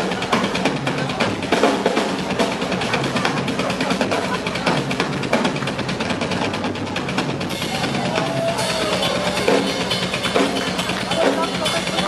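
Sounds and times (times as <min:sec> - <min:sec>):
rock drum solo: 0:00.0 - 0:12.0.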